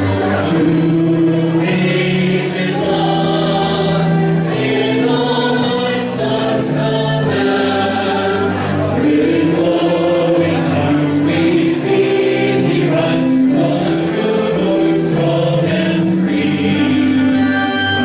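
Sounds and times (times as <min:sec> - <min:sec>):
choir singing held notes: 0:00.0 - 0:18.0.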